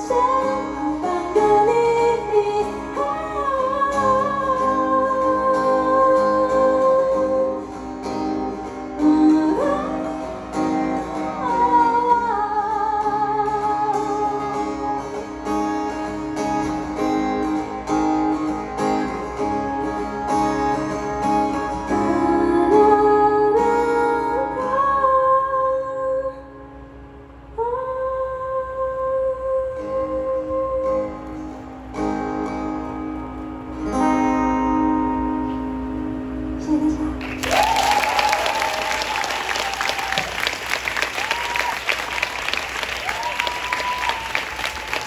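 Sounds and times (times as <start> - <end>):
woman singing: 0.0 - 8.2, 8.8 - 15.2, 21.8 - 26.5, 27.6 - 31.4, 36.6 - 37.4
acoustic guitar: 0.0 - 45.0.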